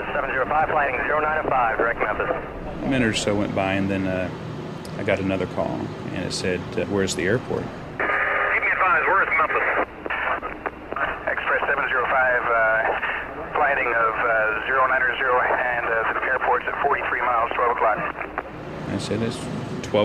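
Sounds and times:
voices over aircraft radio: 0:00.0 - 0:04.3, 0:05.1 - 0:20.0.

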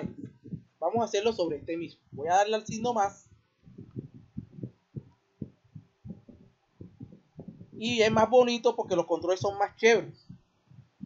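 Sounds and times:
faint soft low thumps: 0:00.0 - 0:11.0.

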